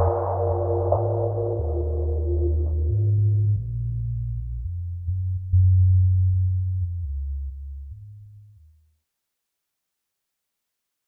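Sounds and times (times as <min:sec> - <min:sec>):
deep sub-bass notes: 0:00.0 - 0:09.0.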